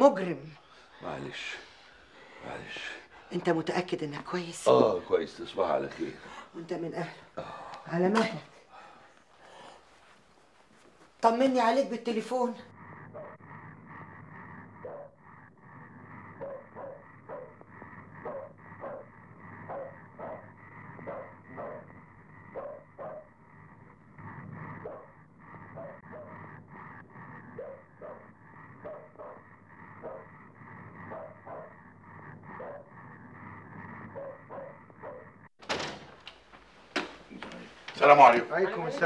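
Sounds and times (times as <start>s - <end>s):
dog barking: 13.0s - 13.4s, 14.7s - 15.2s, 16.3s - 23.4s, 24.8s - 25.1s, 25.7s - 26.5s, 27.5s - 30.3s, 31.0s - 31.8s, 32.4s - 32.9s, 34.0s - 35.4s.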